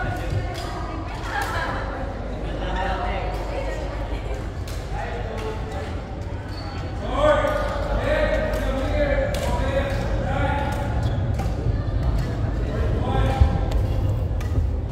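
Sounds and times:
rackets hitting shuttlecocks: 7.4s - 14.9s.

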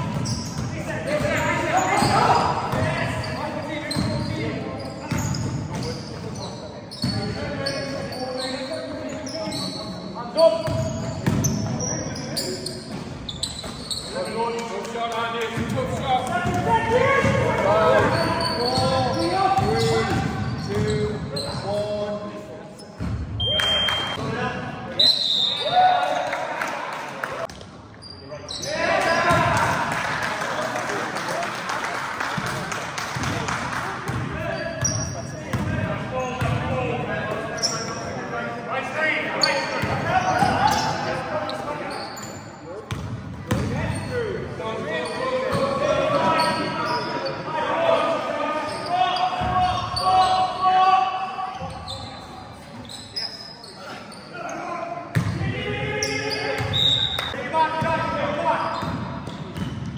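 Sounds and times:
shoe squeaks: 0.0s - 2.5s, 3.1s - 14.6s, 17.8s - 22.0s, 27.9s - 29.3s, 34.4s - 35.5s, 37.4s - 38.3s, 39.3s - 42.8s, 43.5s - 44.3s, 44.9s - 47.5s, 48.6s - 50.5s, 51.4s - 54.7s, 55.9s - 57.4s
players shouting: 16.1s - 20.6s, 43.7s - 52.2s.

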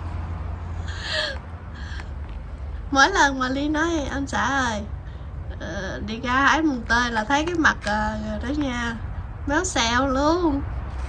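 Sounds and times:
steady low rumble: 0.0s - 11.0s
soft breath: 0.6s - 2.9s
person laughing breathily: 0.8s - 2.1s.

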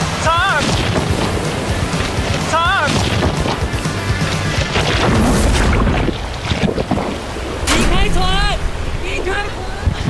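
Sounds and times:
background music: 0.0s - 5.9s
surf crashing: 0.0s - 10.0s
wind rumbling on microphone: 0.5s - 10.0s.

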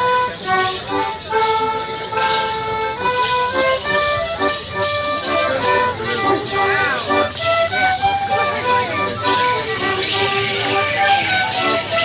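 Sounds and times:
folk dance tune: 0.0s - 12.0s.

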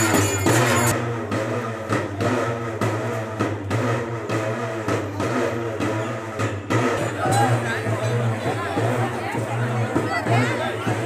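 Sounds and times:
temple drums beating: 0.0s - 11.0s.

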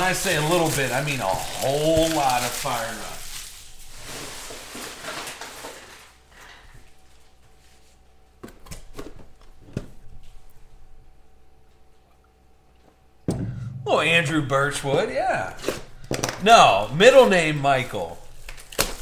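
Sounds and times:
card packs rustling: 0.0s - 7.4s, 14.9s - 19.0s.

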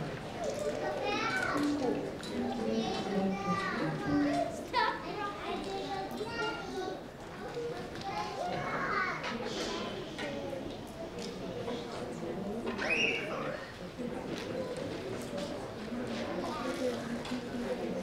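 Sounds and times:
children chattering: 0.0s - 18.0s.

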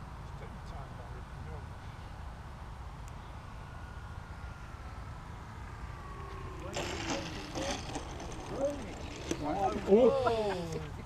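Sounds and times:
model plane motor whine: 3.1s - 11.0s
people talking and laughing: 6.6s - 11.0s.

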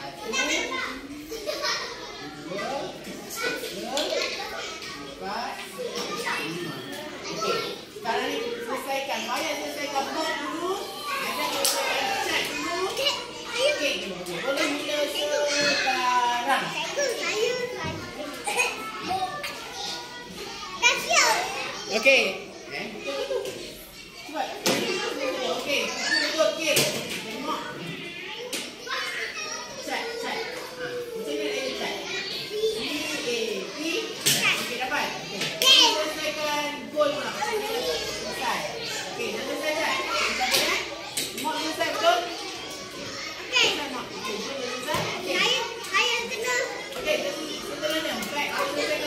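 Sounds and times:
children talking and calling out: 0.0s - 49.0s.

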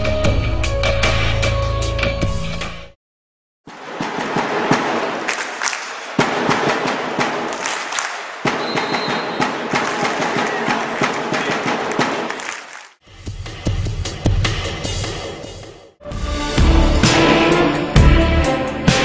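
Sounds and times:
loud drumming: 3.7s - 12.5s
crowd noise: 3.7s - 12.9s
people clapping: 3.7s - 13.0s.

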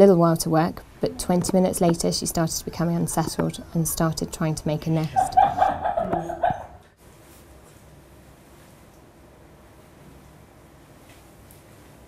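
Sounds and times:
dog yelp: 5.2s - 6.8s.

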